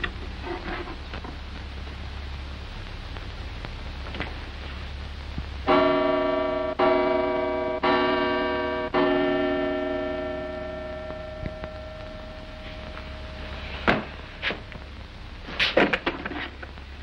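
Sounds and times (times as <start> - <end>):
clock striking bell tones: 5.7 - 12.0.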